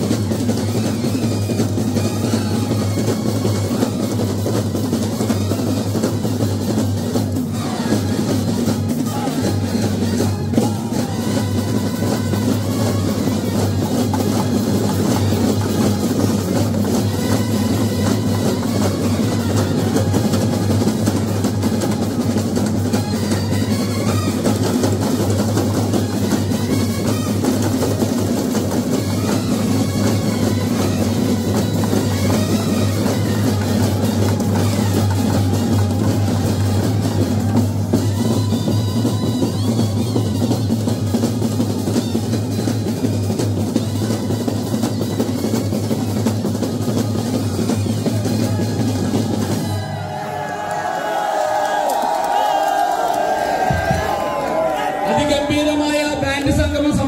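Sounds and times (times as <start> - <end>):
bass drums: 0.0 - 49.8, 53.5 - 55.6
cymbals: 0.0 - 50.4
snare drums: 0.0 - 57.0
trumpets and brass horns: 0.0 - 57.0.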